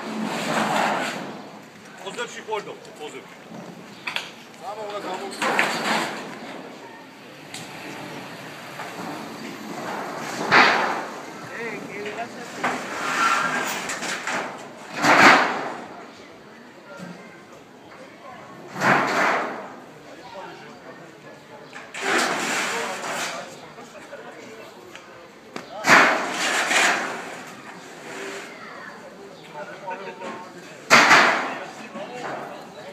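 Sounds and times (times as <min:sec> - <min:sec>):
sheet metal crashing onto a stack: 0:00.0 - 0:01.4, 0:05.3 - 0:06.3, 0:09.8 - 0:11.2, 0:12.6 - 0:15.9, 0:18.7 - 0:19.7, 0:25.8 - 0:27.5, 0:30.9 - 0:32.4
men's voices: 0:01.8 - 0:06.8, 0:07.5 - 0:12.9.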